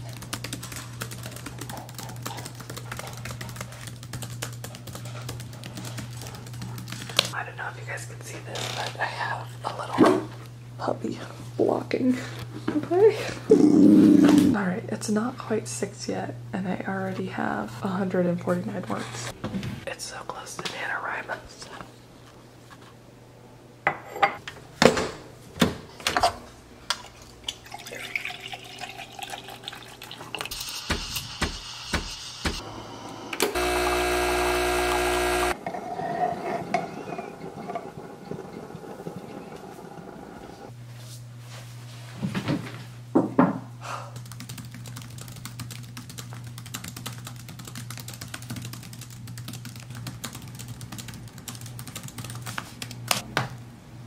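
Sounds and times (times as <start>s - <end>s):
milk pouring into mug: 27.1s - 30.5s
coffee machine buzzing: 30.4s - 35.7s, 36.7s - 40.7s
hiss: 30.5s - 32.6s.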